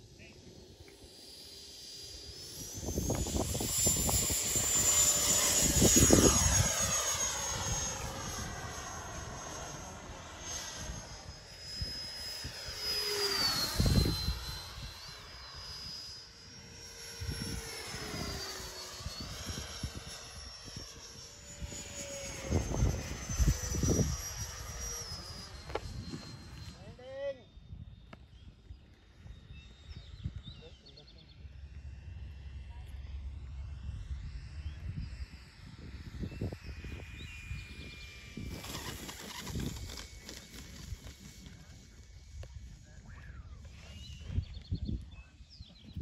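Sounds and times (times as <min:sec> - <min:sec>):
model jet engine whine: 0:00.0 - 0:46.0.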